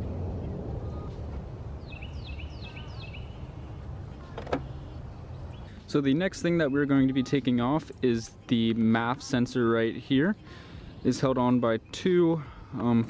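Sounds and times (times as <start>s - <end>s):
bird chirping: 0.0s - 8.5s
low outdoor rumble: 0.0s - 13.0s.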